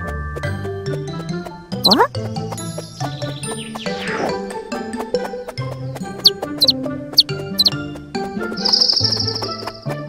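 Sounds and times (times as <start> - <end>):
light background music: 0.0 - 10.0
cartoon bird chirps: 1.8 - 2.1.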